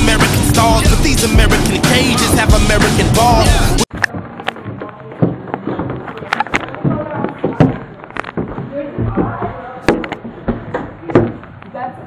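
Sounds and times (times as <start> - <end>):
steady background noise: 3.8 - 12.0.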